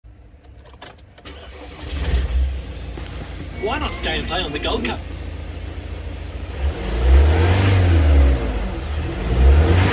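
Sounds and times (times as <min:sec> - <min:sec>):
ignition clicks: 0:00.2 - 0:04.3
starter cranking engine: 0:01.1 - 0:02.4.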